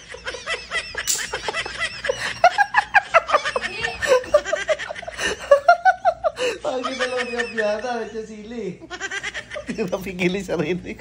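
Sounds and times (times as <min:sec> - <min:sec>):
man laughing hard: 0:00.0 - 0:08.3.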